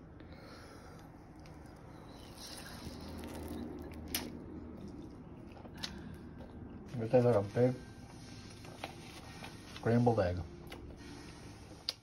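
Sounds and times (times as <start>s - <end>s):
person chewing: 0.8s - 6.9s.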